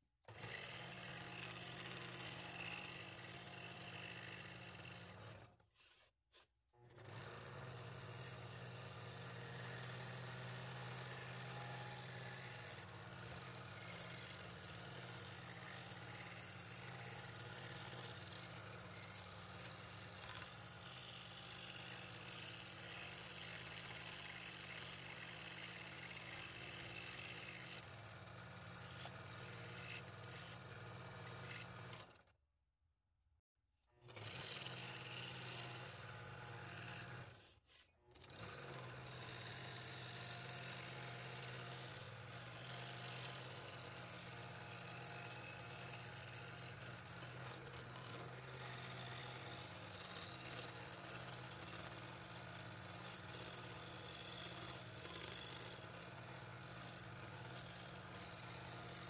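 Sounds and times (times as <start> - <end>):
scroll saw cutting wood: 0.2 - 32.4, 33.9 - 59.0.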